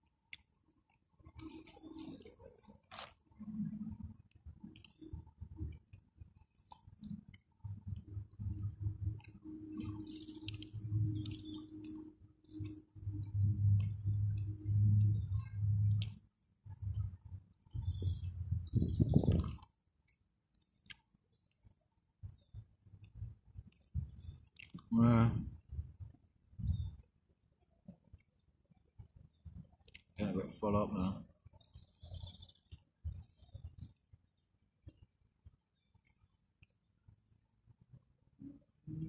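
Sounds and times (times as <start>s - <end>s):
man chewing and swallowing: 0.2s - 24.9s, 27.8s - 30.2s
small mouth clicks: 23.8s - 24.9s, 29.8s - 30.2s.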